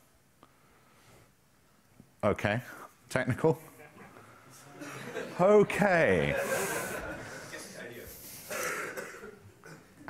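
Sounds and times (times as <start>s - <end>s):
man clearing his throat: 8.5s - 10.0s.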